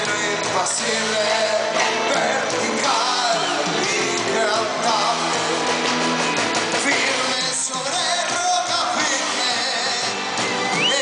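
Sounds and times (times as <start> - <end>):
man singing into a microphone: 0.0 - 5.9, 6.8 - 11.0
live rock band playing: 0.0 - 11.0.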